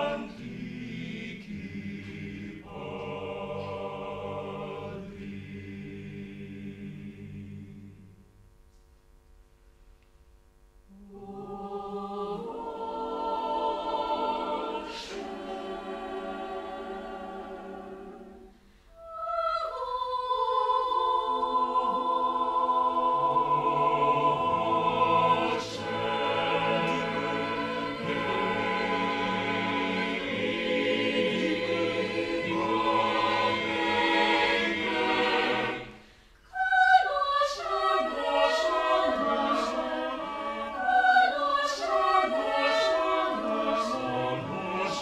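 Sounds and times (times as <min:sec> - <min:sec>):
a cappella choir singing chords: 0:00.0 - 0:08.4, 0:10.9 - 0:45.0.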